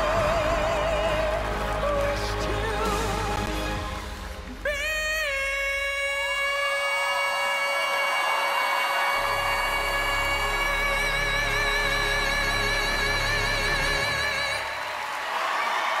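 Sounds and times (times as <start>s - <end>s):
deep bass: 0.0s - 5.8s, 9.2s - 14.4s
man singing a long high note: 4.6s - 14.9s.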